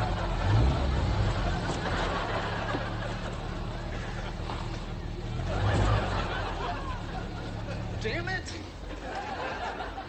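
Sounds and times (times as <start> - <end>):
sports car engine rumbling: 0.0 - 10.0.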